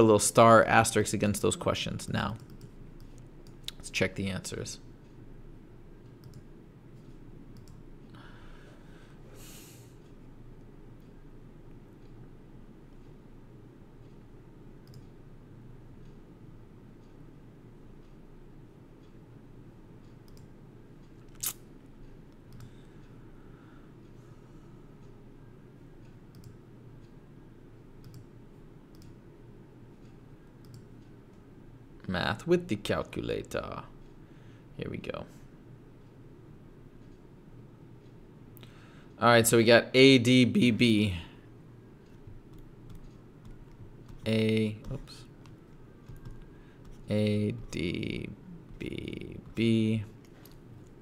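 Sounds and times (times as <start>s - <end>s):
low room hum: 0.0s - 51.0s
computer mouse clicks: 2.3s - 3.8s, 6.0s - 7.8s, 14.8s - 15.2s, 20.0s - 20.5s, 22.4s - 22.8s, 26.0s - 26.6s, 28.0s - 28.3s, 28.9s - 29.2s, 30.0s - 31.1s
short breath: 8.1s - 10.0s, 38.6s - 39.2s.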